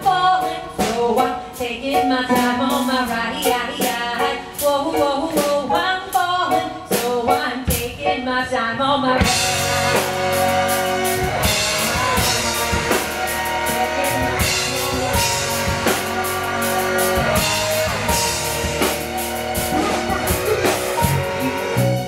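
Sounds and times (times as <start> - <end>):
drum kit steady beat: 0.0 - 8.0, 9.2 - 22.0
bass guitar: 9.1 - 22.0
electric guitar sustained notes: 9.2 - 22.0.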